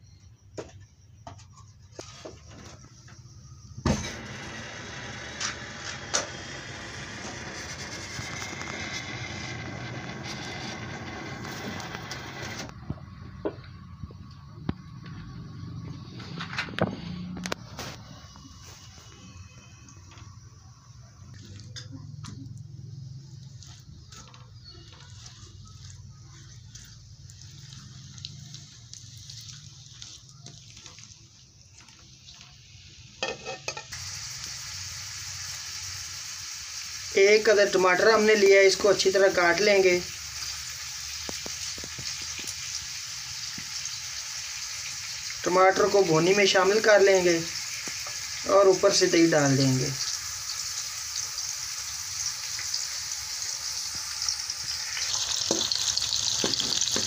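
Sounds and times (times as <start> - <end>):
onions frying with soft sizzle: 1.9 - 57.0
ladle clinking and scraping pan: 33.2 - 33.9.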